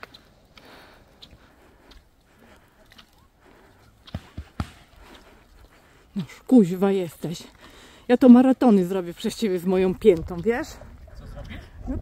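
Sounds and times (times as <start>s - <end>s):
footsteps on asphalt: 0.0s - 11.1s.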